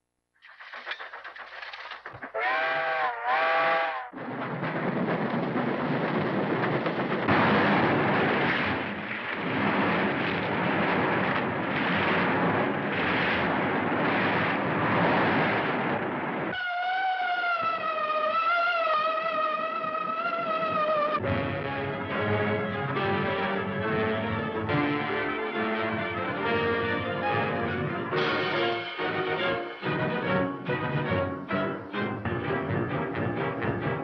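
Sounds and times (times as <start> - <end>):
steam locomotive whistle blasts: 2.3 - 4.2, 16.6 - 21.1
music: 16.5 - 34.0.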